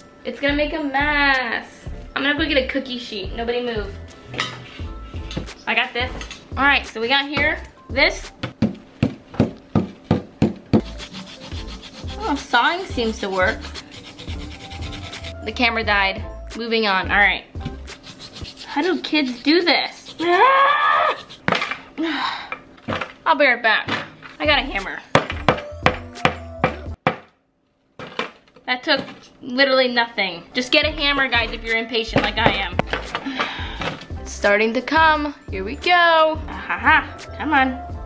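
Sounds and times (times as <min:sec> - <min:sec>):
background music: 0:00.0 - 0:22.4, 0:24.1 - 0:27.1, 0:29.9 - 0:38.0.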